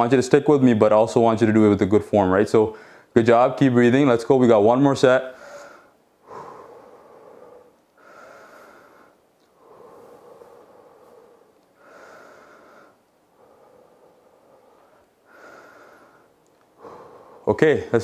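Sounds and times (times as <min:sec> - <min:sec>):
man breathing: 0:02.7 - 0:03.2, 0:05.3 - 0:18.0.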